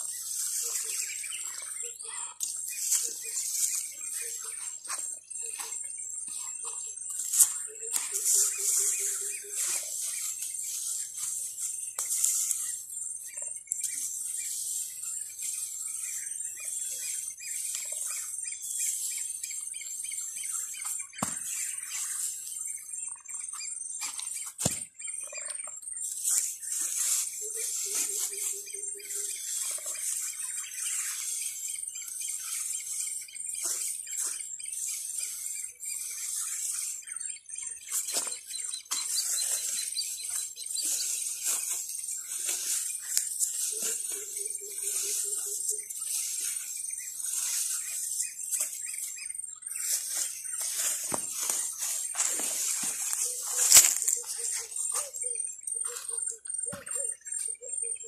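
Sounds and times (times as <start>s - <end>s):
hands scraping soil: 0.0s - 25.0s, 25.6s - 55.2s
high-pitched chirping chorus: 0.0s - 58.0s.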